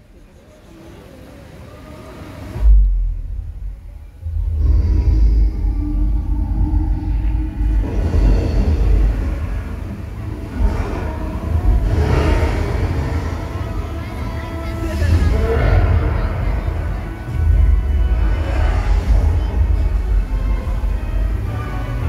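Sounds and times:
deep boom: 0:02.6 - 0:13.4
sustained bass rumble: 0:02.6 - 0:22.0
soundtrack music over loudspeakers: 0:07.1 - 0:22.0.

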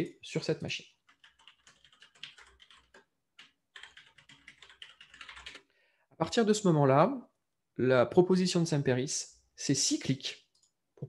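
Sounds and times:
computer keyboard typing: 0:01.0 - 0:05.7.

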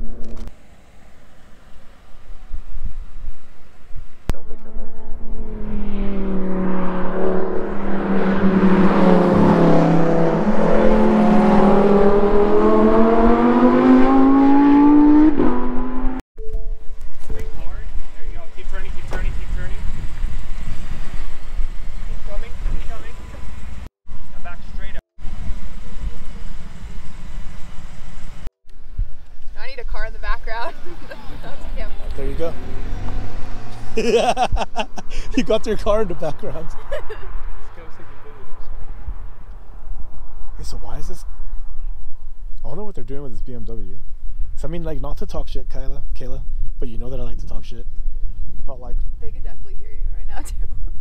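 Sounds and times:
truck engine accelerating: 0:00.0 - 0:16.2, 0:16.8 - 0:28.5, 0:30.4 - 0:41.8.

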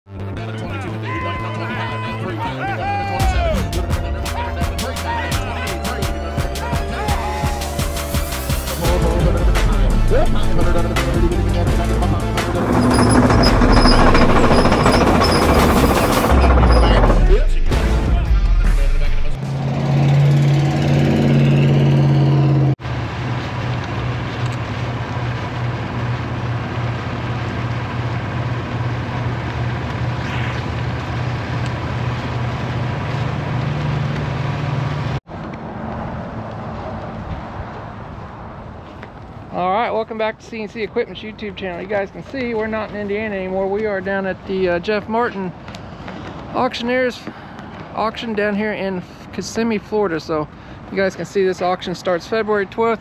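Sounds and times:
road noise: 0:00.1 - 0:53.0
intro music: 0:03.2 - 0:22.8
vehicle engine drone: 0:03.2 - 0:39.5.

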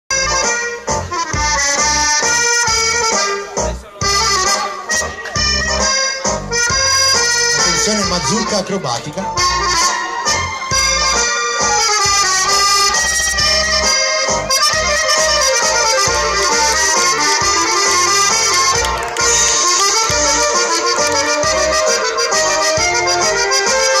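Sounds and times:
accordion dance music: 0:00.1 - 0:24.0.

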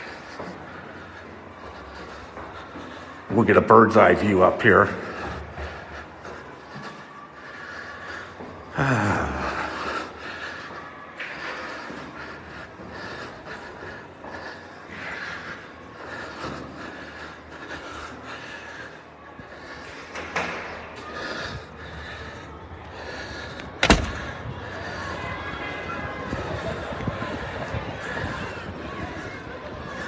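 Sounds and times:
footsteps walking: 0:00.0 - 0:08.7
person breathing hard: 0:00.0 - 0:30.0.

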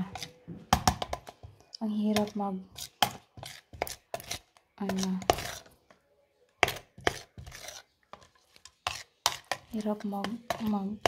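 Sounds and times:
spoon stirring in plastic jar: 0:00.0 - 0:11.0.

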